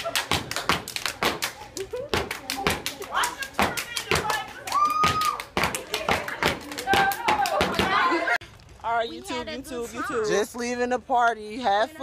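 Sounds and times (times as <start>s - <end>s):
crowd clapping and stomping: 0.0s - 8.2s.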